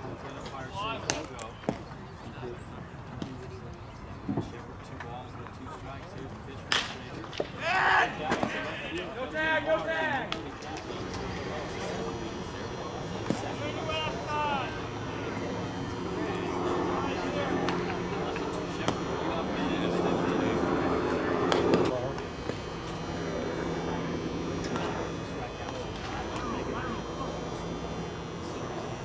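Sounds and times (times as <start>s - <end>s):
steady background hum: 0.0s - 29.0s
players calling out: 7.6s - 29.0s.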